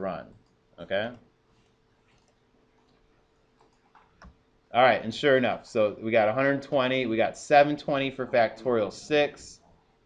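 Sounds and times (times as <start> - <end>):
computer mouse clicks: 2.1 - 3.0, 3.6 - 4.4.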